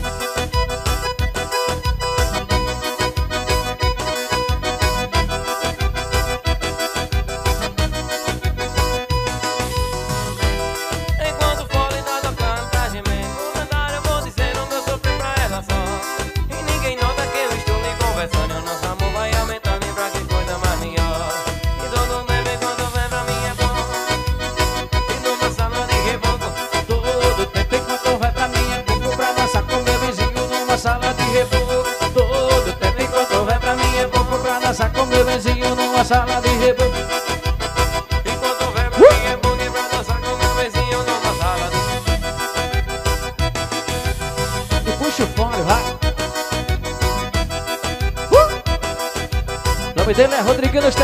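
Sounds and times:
pulsing bass beat: 0:00.0 - 0:19.3, 0:38.8 - 0:39.6, 0:47.0 - 0:48.9
electronic keyboard melody: 0:00.0 - 0:51.0.

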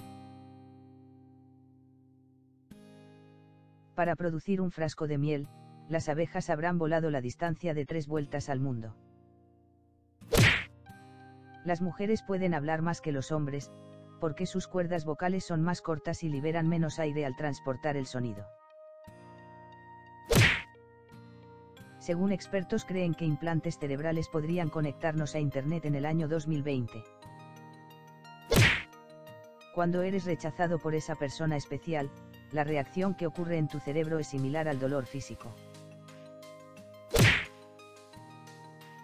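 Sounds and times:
soft background music: 0:04.0 - 0:09.4, 0:10.3 - 0:39.0
whack transition sound effect: 0:10.3 - 0:10.7, 0:20.3 - 0:20.7, 0:28.5 - 0:28.9, 0:37.1 - 0:37.6.

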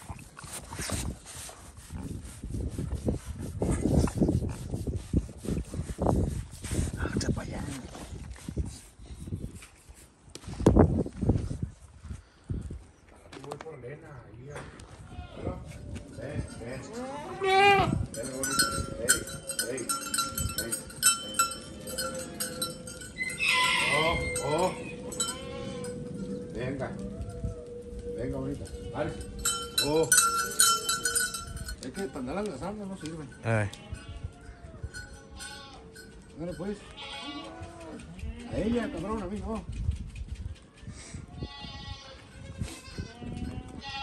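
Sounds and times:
goats bleating: 0:16.9 - 0:26.2, 0:36.8 - 0:39.1, 0:41.4 - 0:44.0
sharp metallic clinks: 0:18.0 - 0:26.8, 0:28.5 - 0:37.8
low rumbling noise: 0:24.1 - 0:31.7.

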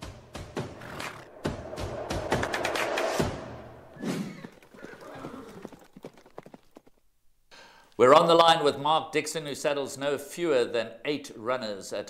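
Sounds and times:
horse whinny: 0:04.0 - 0:06.0
galloping hoofbeats: 0:04.4 - 0:07.0.

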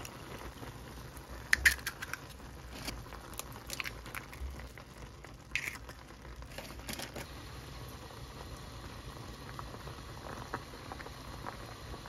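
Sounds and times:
broth boiling and bubbling: 0:00.0 - 0:12.0
small bubble pops: 0:01.4 - 0:02.3.

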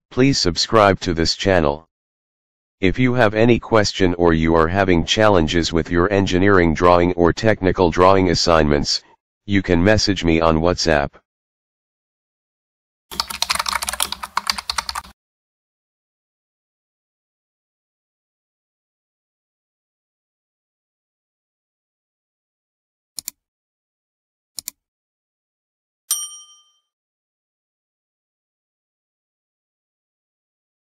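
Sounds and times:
computer keyboard typing: 0:13.1 - 0:15.2
notification bell ding: 0:26.1 - 0:26.9.

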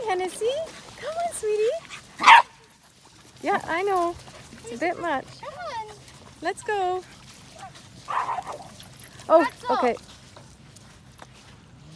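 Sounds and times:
small dog barking: 0:02.2 - 0:02.6, 0:07.5 - 0:08.8.

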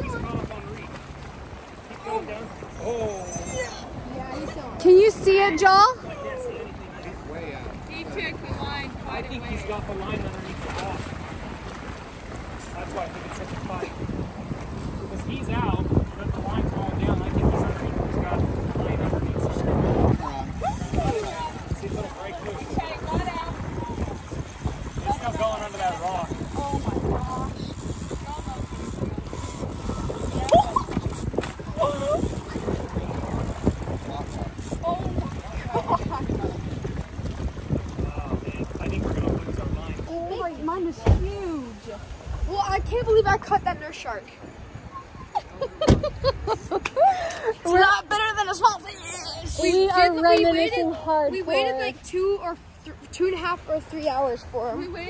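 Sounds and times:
faint voices: 0:00.0 - 0:14.1, 0:14.7 - 0:55.0
wind buffeting microphone: 0:00.0 - 0:55.0.

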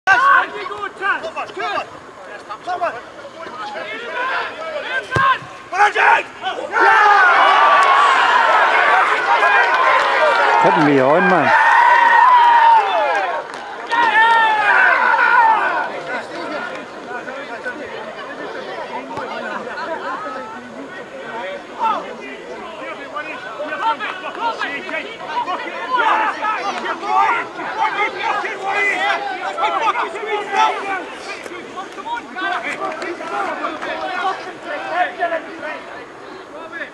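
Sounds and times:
players shouting: 0:00.1 - 0:19.6, 0:20.2 - 0:36.9
crowd cheering and yelling: 0:00.1 - 0:36.9
people talking over each other: 0:00.1 - 0:36.9
thump: 0:05.1 - 0:05.5.

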